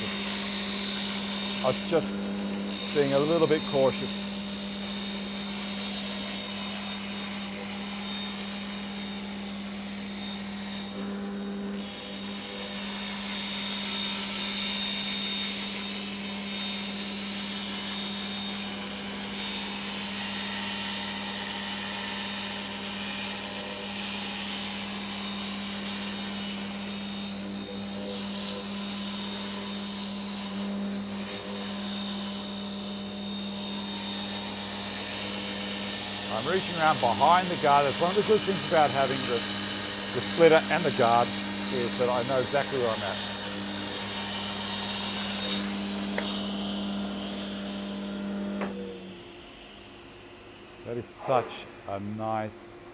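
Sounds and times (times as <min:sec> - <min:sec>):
table saw ripping wood: 0:00.0 - 0:07.2, 0:29.4 - 0:48.8
dust extractor drawing air: 0:00.0 - 0:29.6, 0:30.2 - 0:49.3.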